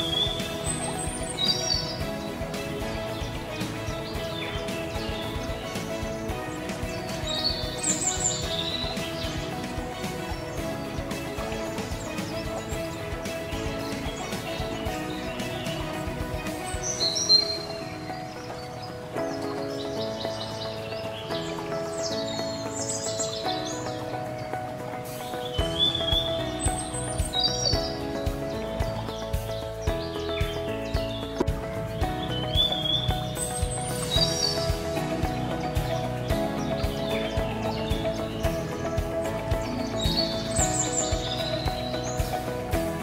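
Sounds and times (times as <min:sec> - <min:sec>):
bird chirps: 0:00.0 - 0:43.0
instrumental music of held chords: 0:00.0 - 0:43.0.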